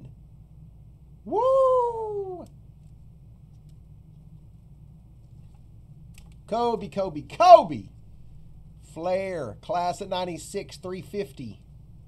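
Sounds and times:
low room hum: 0:00.0 - 0:12.0
man cheering woo: 0:01.3 - 0:02.5
faint clicks: 0:05.2 - 0:06.4.

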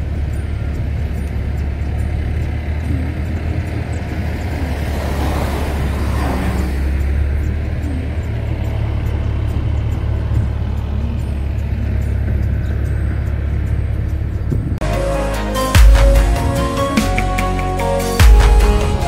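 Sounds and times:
car engine and tyres rumble: 0:00.0 - 0:19.0
rushing noise: 0:04.1 - 0:07.4.

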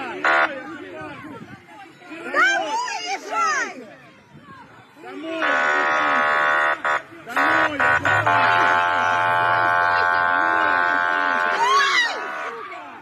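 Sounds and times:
people's voices: 0:00.0 - 0:13.0
truck horn blaring: 0:05.4 - 0:12.7.

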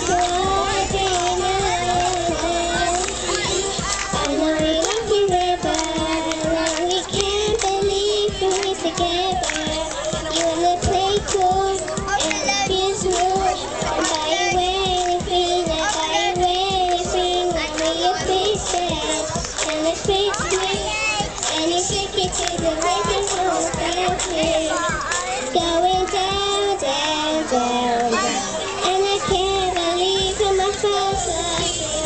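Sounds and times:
girl singing into microphone: 0:00.0 - 0:32.0
pop backing track with drums: 0:00.0 - 0:32.0.

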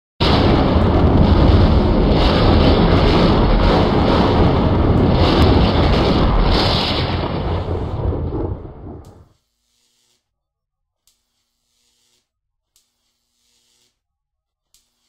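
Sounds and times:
rumbling and crackling: 0:00.2 - 0:09.3.

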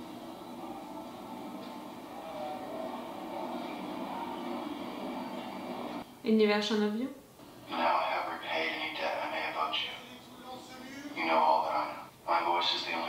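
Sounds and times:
low soundtrack drone: 0:00.0 - 0:06.0.

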